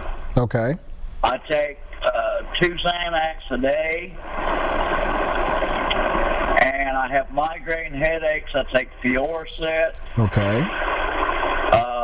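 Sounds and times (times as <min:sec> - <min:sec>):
telephone line hiss: 0:01.2 - 0:12.0.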